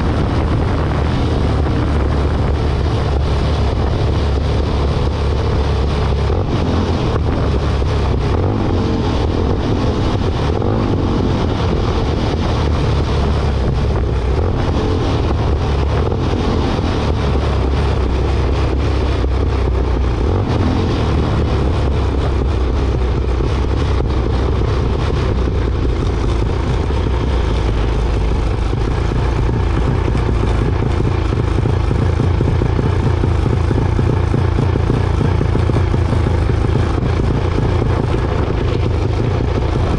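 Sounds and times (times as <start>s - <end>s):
engine running at low revs: 0.0s - 39.9s.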